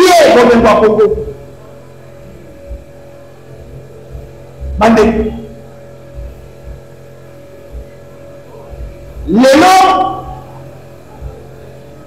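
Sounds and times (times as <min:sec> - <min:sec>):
electrical mains hum: 0:00.0 - 0:12.0
faint low thuds: 0:02.2 - 0:09.4.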